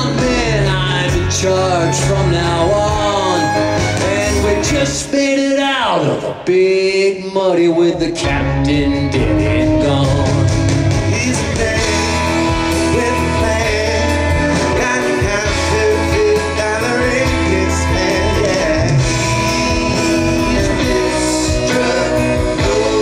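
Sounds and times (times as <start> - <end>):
live band playing a groove: 0.0 - 6.6, 7.8 - 23.0
lead voice singing: 0.0 - 23.0.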